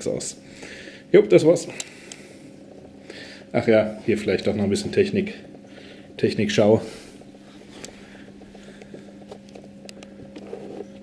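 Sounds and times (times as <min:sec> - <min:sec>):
aquarium equipment humming: 0:00.0 - 0:11.0
faint ticks and clicks: 0:07.6 - 0:10.5.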